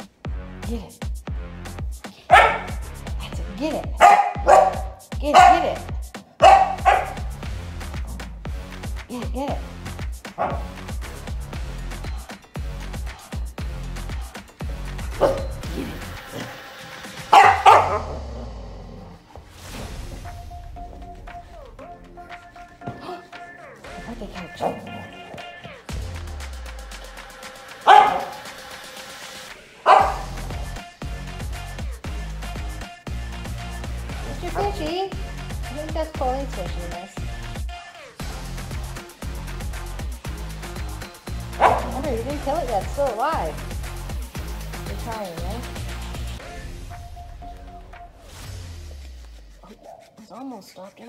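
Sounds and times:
quiet background music: 0:02.0 - 0:31.0, 0:33.8 - 0:37.2, 0:40.7 - 0:51.0
dog barking excitedly: 0:02.2 - 0:08.4, 0:10.2 - 0:10.9, 0:15.0 - 0:16.5, 0:17.2 - 0:18.3, 0:24.4 - 0:25.4, 0:27.8 - 0:28.6, 0:29.8 - 0:30.7, 0:34.3 - 0:34.9, 0:41.4 - 0:43.3.

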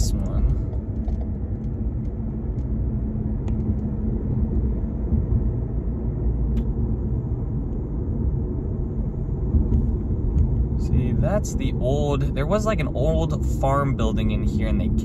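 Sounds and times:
car road and tyre noise: 0:00.0 - 0:15.0.

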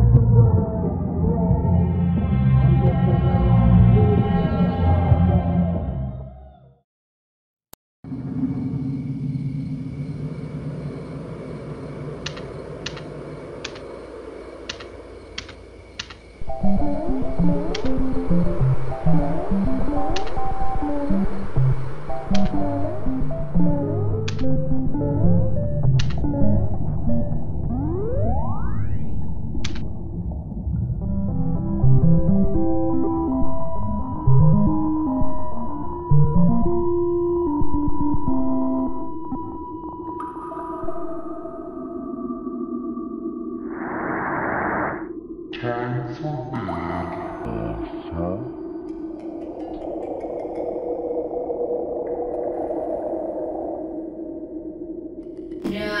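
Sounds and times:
eerie synthesizer drone: 0:00.0 - 0:06.7, 0:08.0 - 0:56.0
computer keyboard clicks: 0:12.3 - 0:13.9, 0:14.7 - 0:16.2
video game music: 0:16.4 - 0:29.0, 0:30.8 - 0:36.7.

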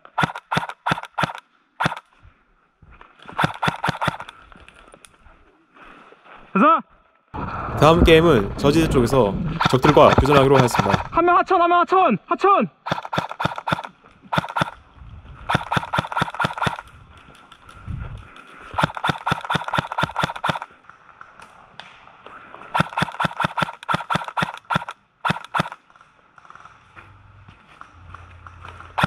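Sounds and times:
airsoft guns firing: 0:00.1 - 0:02.0, 0:03.4 - 0:04.3, 0:09.6 - 0:11.2, 0:12.9 - 0:14.8, 0:15.5 - 0:16.8, 0:18.8 - 0:20.7, 0:22.8 - 0:25.8.

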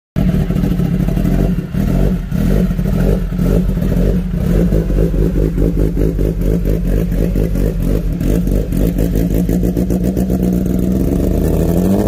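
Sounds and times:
motorcycle engine revving: 0:00.2 - 0:12.0.

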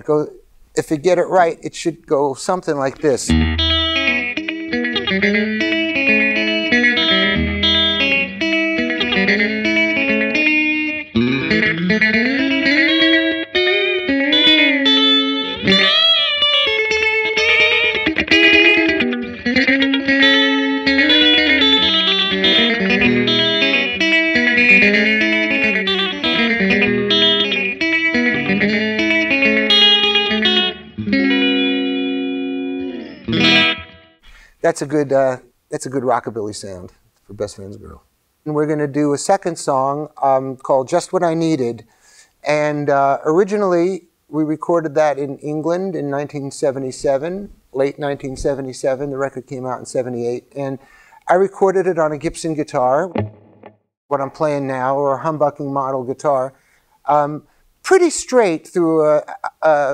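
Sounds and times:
twangy electric guitar solo: 0:02.8 - 0:34.5, 0:50.8 - 0:56.7.

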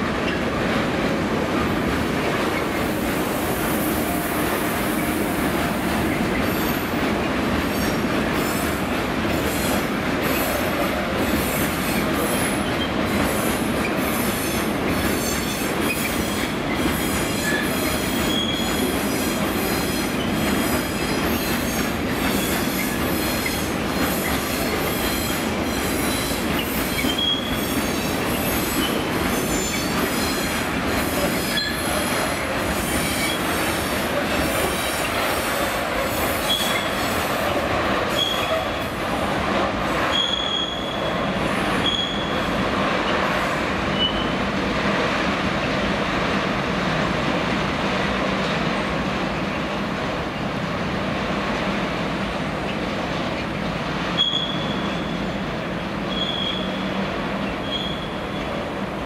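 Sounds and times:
train wheels clicking over rail joints: 0:00.0 - 0:38.8.

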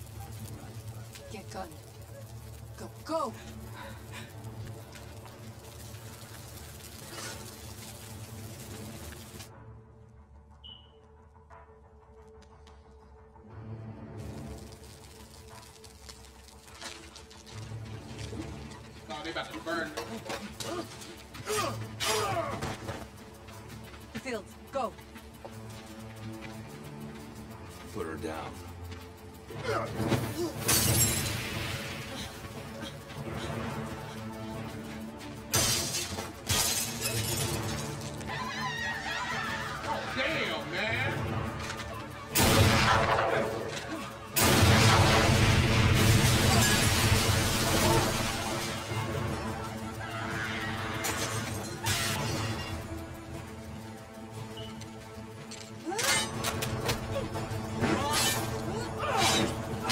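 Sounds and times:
drama soundtrack music: 0:00.0 - 0:59.9.

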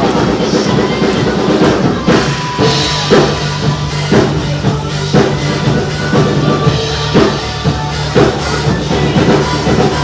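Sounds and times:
drum kit playing: 0:00.0 - 0:10.0
pop backing track: 0:00.0 - 0:10.0.

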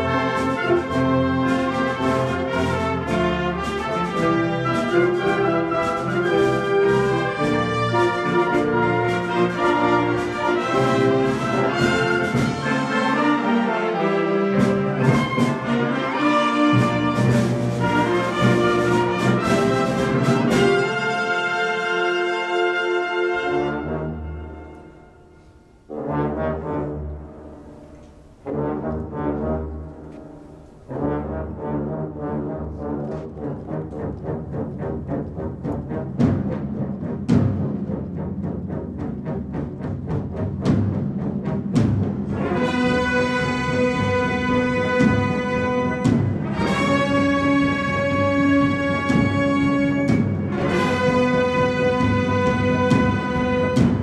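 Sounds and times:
wind band playing chords: 0:00.0 - 0:54.0
brass section playing chords: 0:42.3 - 0:54.0.

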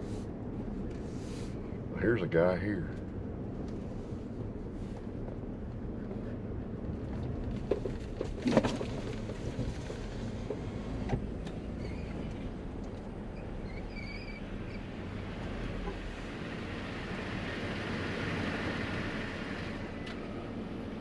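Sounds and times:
road noise: 0:00.0 - 0:21.0
truck engine hum: 0:00.0 - 0:21.0.

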